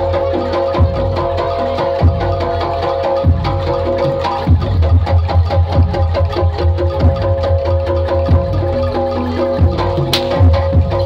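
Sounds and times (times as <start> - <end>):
hand drums: 0.0 - 11.0
struck metal percussion: 0.0 - 11.0.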